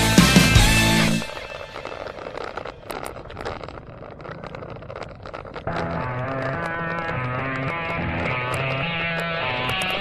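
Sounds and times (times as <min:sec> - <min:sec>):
road noise: 0:00.0 - 0:10.0
bicycle clicks and rattles: 0:00.7 - 0:10.0
wind rush: 0:01.0 - 0:07.9.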